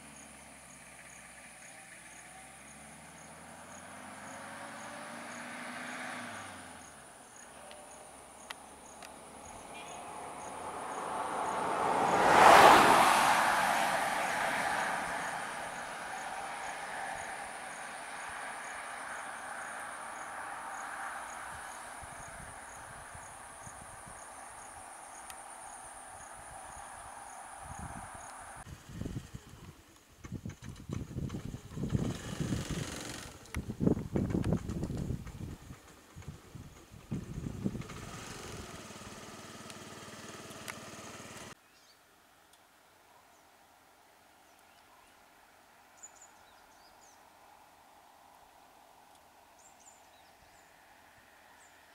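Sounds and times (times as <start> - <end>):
vehicle passing: 0.0 - 29.7, 30.7 - 41.6
insect drone: 0.0 - 41.5, 46.0 - 51.9.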